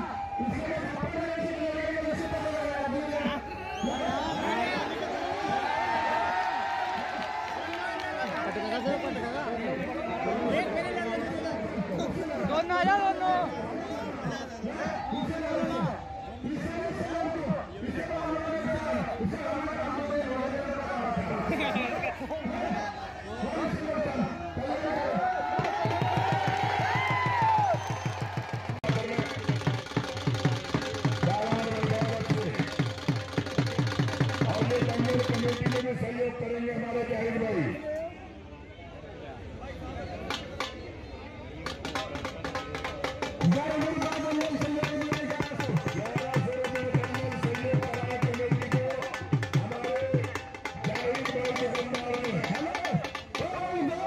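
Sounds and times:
man's voice over loudspeaker: 0:00.0 - 0:03.5, 0:07.8 - 0:25.2, 0:28.8 - 0:38.2, 0:41.6 - 0:54.0
crowd chatter: 0:00.0 - 0:27.4, 0:28.1 - 0:54.0
men talking over one another: 0:07.0 - 0:26.3, 0:28.6 - 0:38.4, 0:39.0 - 0:54.0
drum beating quick rhythm: 0:25.2 - 0:35.9, 0:40.3 - 0:40.8, 0:41.6 - 0:54.0.

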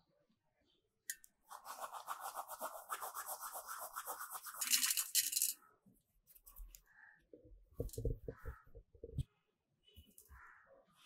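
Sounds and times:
hands rubbing seeds: 0:01.5 - 0:05.4.

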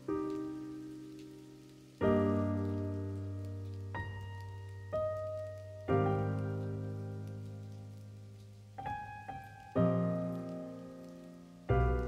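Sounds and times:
slow piano chords: 0:00.0 - 0:12.0.

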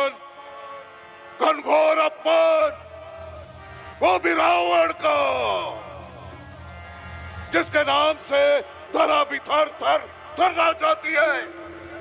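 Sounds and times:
echoing shout: 0:00.0 - 0:12.0.

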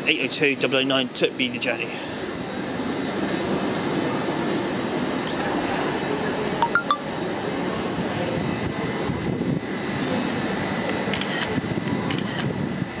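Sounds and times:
train hum and rumble: 0:00.0 - 0:13.0.

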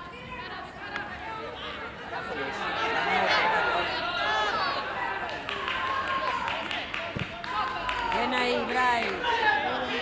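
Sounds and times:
players and spectators shouting: 0:00.1 - 0:06.8.

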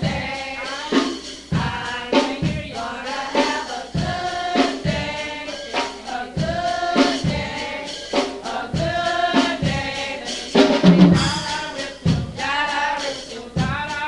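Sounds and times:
choir singing gospel song: 0:00.0 - 0:14.0
sharp percussion strikes: 0:00.0 - 0:14.0.

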